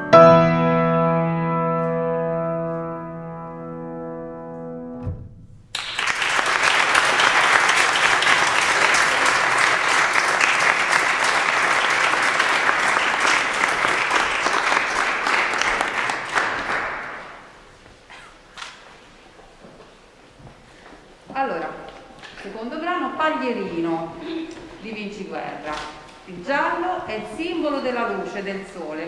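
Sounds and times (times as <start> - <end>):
audience applause: 5.7 - 17.6.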